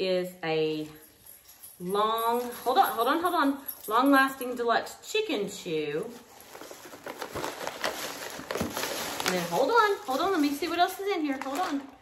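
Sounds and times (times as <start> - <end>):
paper and plastic rustling: 5.8 - 12.0.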